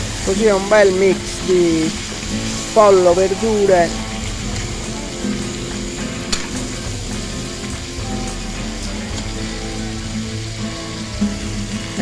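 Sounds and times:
background music: 0.0 - 12.0
food sizzling in a wok: 0.0 - 12.0.

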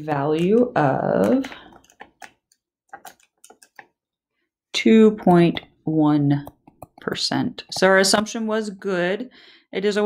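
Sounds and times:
calculator keystrokes: 0.4 - 4.0.

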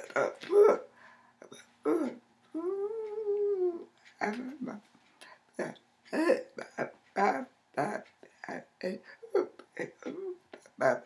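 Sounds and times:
woman's wordless vocal sounds: 0.0 - 4.9, 5.5 - 11.0.

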